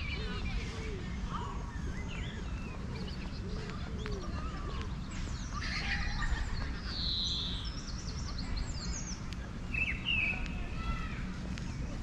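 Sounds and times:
songbirds singing: 0:00.0 - 0:12.0.

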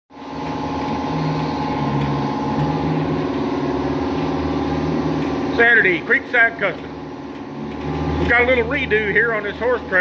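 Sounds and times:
air compressor humming: 0:00.1 - 0:10.0.

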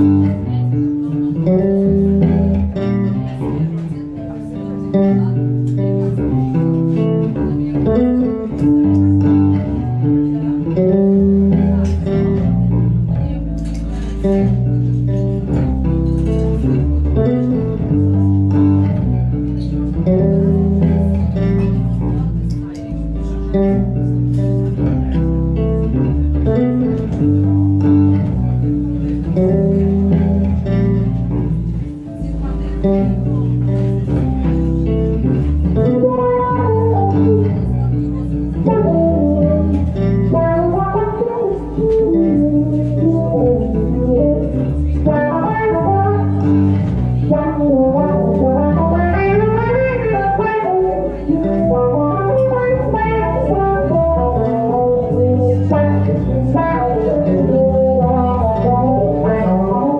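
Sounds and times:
solo electric bass: 0:00.0 - 0:59.9.

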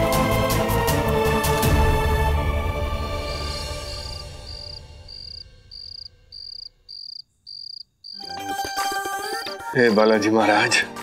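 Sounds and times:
music: 0:00.0 - 0:06.3, 0:08.2 - 0:11.0
cricket chirping: 0:03.4 - 0:08.4.

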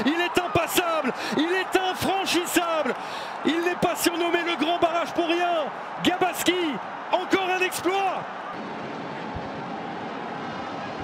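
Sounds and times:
man shouting excitedly: 0:00.0 - 0:08.3
stadium crowd noise: 0:00.0 - 0:11.0.

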